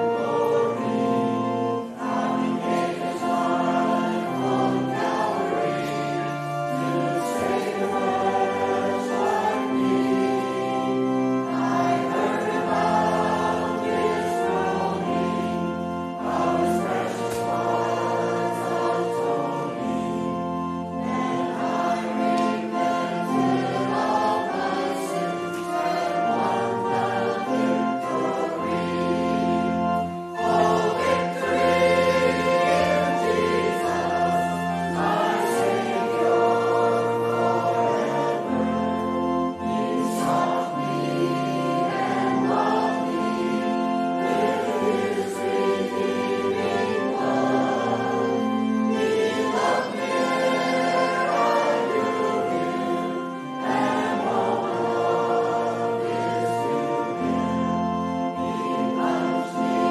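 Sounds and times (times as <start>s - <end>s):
choir and congregation singing hymn: 0.0s - 59.9s.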